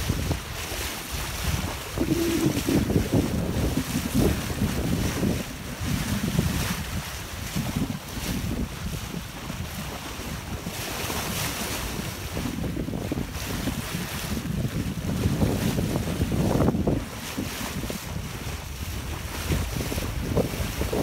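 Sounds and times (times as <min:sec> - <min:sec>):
choppy sea water: 0:00.0 - 0:21.0
wind buffeting microphone: 0:00.0 - 0:21.0.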